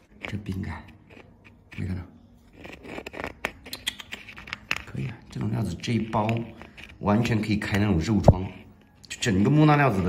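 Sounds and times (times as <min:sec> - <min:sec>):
stone clicking and scraping: 0:00.0 - 0:10.0.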